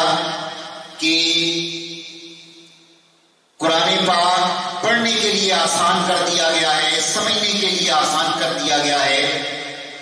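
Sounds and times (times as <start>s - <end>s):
man chanting through pa system: 0.0s - 2.8s, 3.6s - 9.9s.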